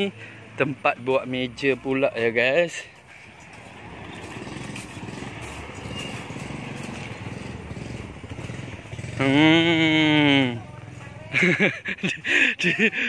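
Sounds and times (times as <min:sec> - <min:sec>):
small motorcycle engine running: 0:03.8 - 0:11.6.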